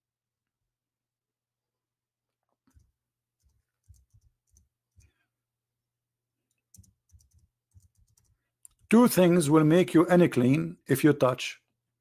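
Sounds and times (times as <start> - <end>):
faint keyboard clicks: 2.4 - 5.2, 6.5 - 9.0.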